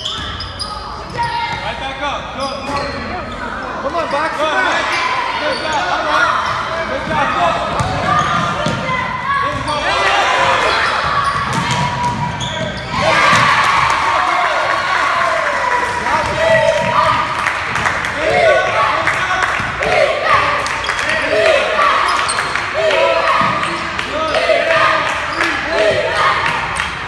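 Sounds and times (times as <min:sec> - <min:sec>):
spectators shouting: 0:12.9 - 0:27.0.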